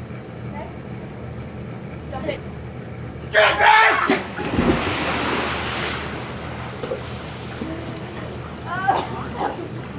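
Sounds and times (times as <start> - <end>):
low mechanical hum: 0.0 - 9.9.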